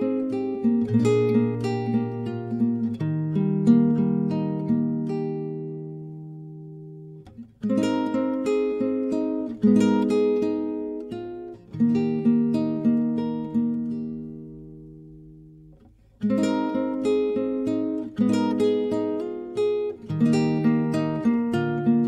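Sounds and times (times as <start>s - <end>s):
gentle acoustic guitar music: 0.0s - 22.0s.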